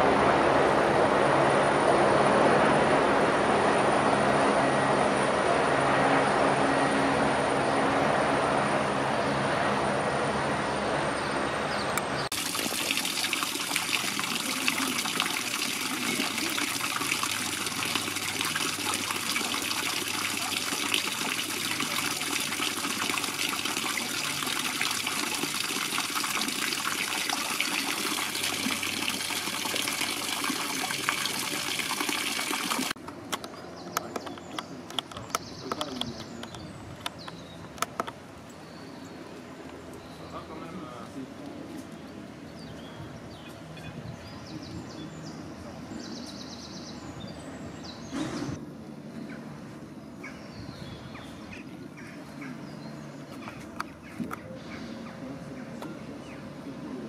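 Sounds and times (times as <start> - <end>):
fountain water splashing into basin: 12.3 - 33.0.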